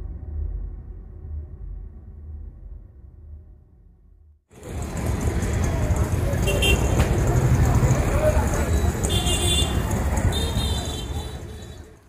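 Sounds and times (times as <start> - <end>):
crowd voices: 4.5 - 12.0
road traffic: 4.5 - 12.0.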